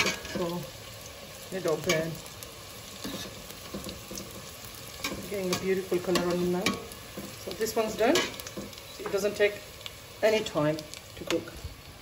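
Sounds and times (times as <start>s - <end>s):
food deep-frying in hot oil: 0.0s - 12.0s.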